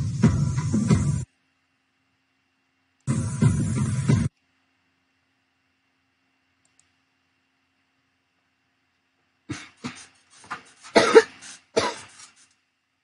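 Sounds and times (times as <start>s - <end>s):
person coughing: 9.5s - 10.2s, 10.8s - 12.3s.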